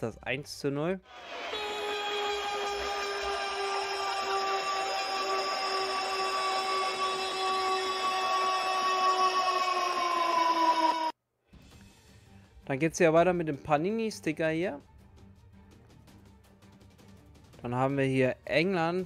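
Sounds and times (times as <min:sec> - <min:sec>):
long horn blast: 0:01.2 - 0:07.9.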